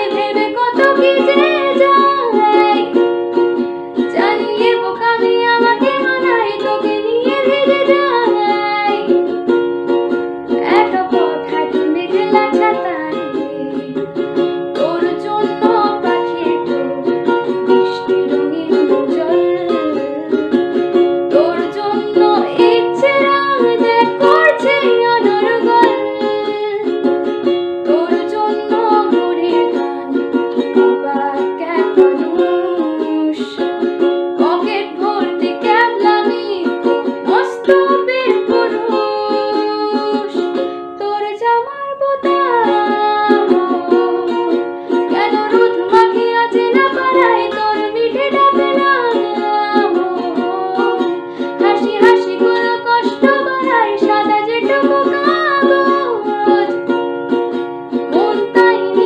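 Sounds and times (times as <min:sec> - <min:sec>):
woman singing: 0:00.0 - 0:03.2, 0:04.0 - 0:09.4, 0:10.4 - 0:59.0
strummed ukulele: 0:00.0 - 0:59.0.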